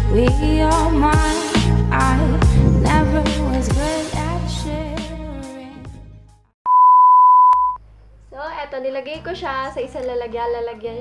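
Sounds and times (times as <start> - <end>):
intro music: 2.0 - 5.0
loud electronic beep: 6.7 - 7.8.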